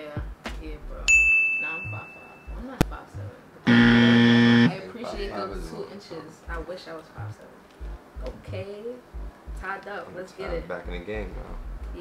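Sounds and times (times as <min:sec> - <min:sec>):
game-show buzzer: 0:03.7 - 0:04.8.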